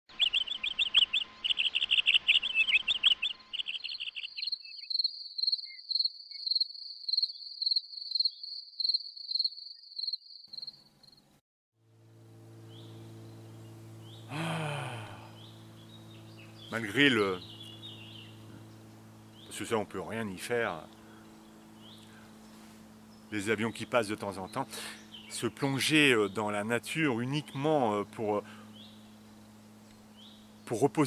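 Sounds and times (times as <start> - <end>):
cricket song pulsing: 0.1 - 11.3
insects trilling: 0.2 - 11.2, 12.7 - 31.0
low steady hum: 11.8 - 31.0.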